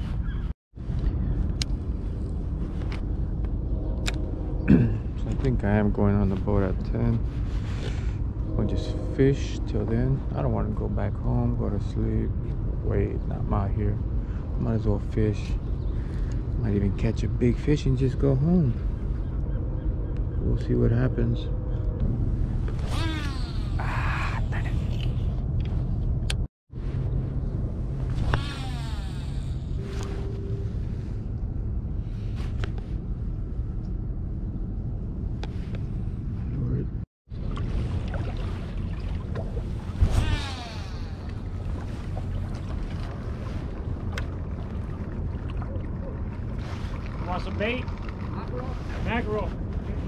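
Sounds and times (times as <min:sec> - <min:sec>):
wind rumbling on microphone: 0:00.0 - 0:50.0
fishing reel spool whine: 0:28.1 - 0:31.0, 0:40.1 - 0:41.8.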